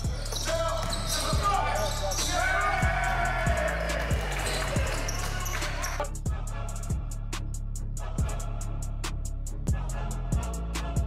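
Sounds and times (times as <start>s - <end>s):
basketball bouncing: 0.0s - 3.0s
players' voices: 0.0s - 6.2s
hip-hop beat: 0.0s - 11.0s.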